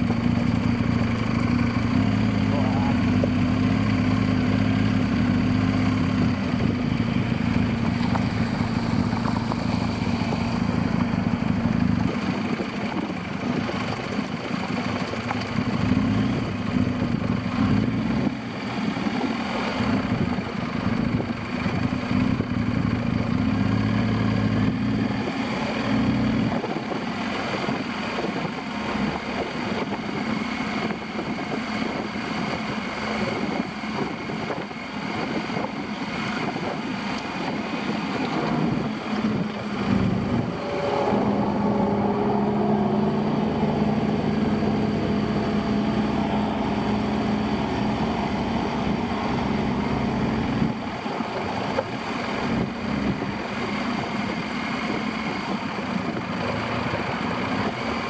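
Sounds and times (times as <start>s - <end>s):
motorcycle engine low speed: 0.0s - 58.0s
wind on microphone: 26.3s - 58.0s.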